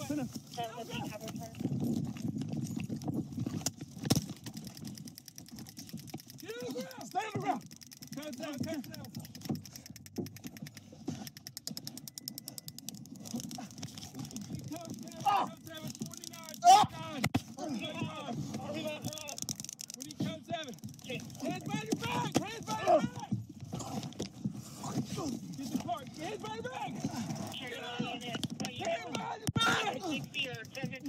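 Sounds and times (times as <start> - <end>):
rustling and scraping of camera: 0.0 - 31.0.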